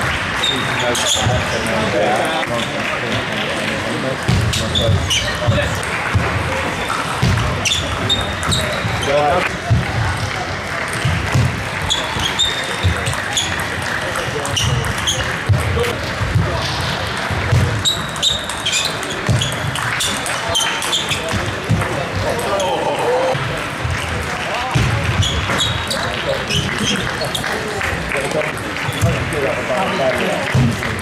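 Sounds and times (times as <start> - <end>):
table tennis balls clicking: 10.8 - 16.2, 16.8 - 22.6.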